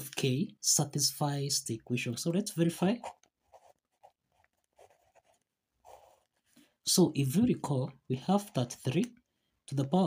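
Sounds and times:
pen scratching on paper: 2.9 - 6.3.

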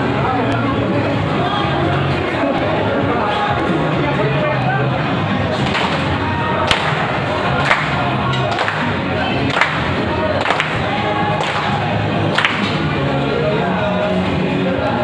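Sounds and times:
upbeat music with singing: 0.0 - 15.0
people clapping in unison: 5.6 - 13.0.

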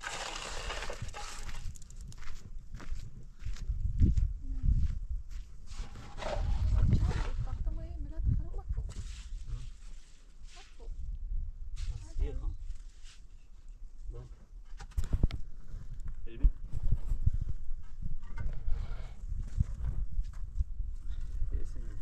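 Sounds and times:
trowel scraping mortar: 0.0 - 1.8, 5.7 - 7.5
wet mortar sliding from metal pan: 0.0 - 1.8, 5.7 - 7.5.

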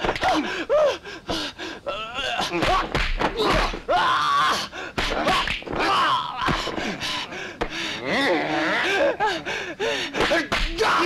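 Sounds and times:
slaps of blows landing: 2.5 - 3.8, 4.9 - 6.8, 10.1 - 11.0.

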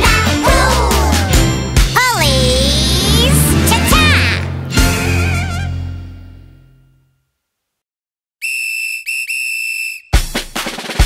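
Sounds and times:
whistle blasts: 8.4 - 10.2.

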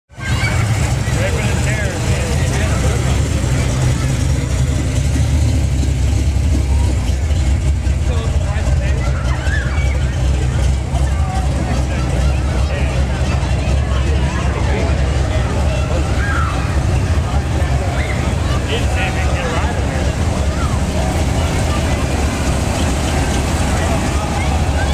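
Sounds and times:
car engines rumbling past: 0.1 - 24.9
people chattering: 0.1 - 24.9.

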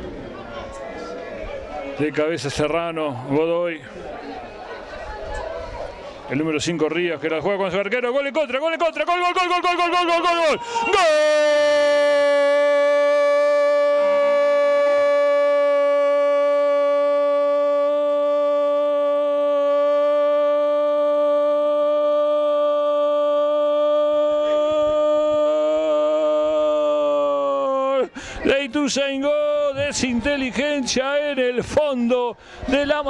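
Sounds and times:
commentator's long goal cry: 9.6 - 28.2.

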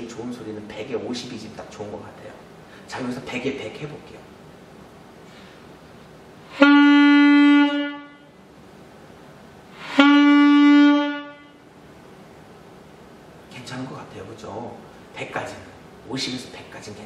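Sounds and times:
alto saxophone note: 6.5 - 8.4, 9.8 - 11.6.

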